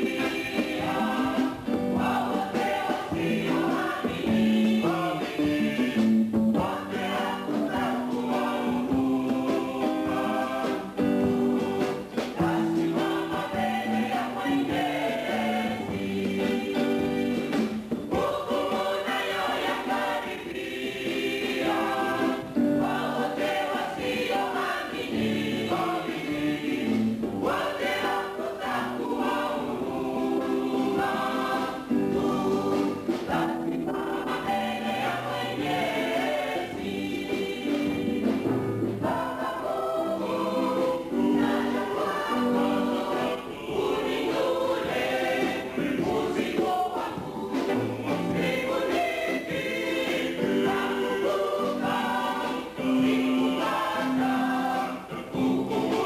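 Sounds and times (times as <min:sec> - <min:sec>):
church choir singing a hymn: 0:00.0 - 0:56.0.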